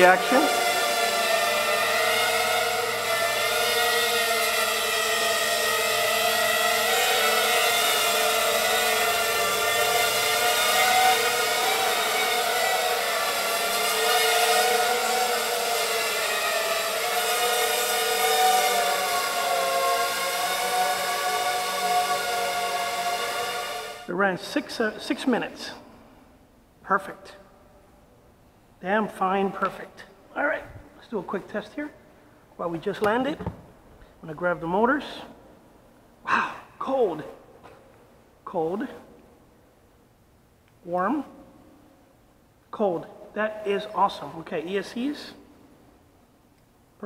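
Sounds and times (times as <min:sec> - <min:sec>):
quadcopter motors whining: 0:00.0 - 0:24.1.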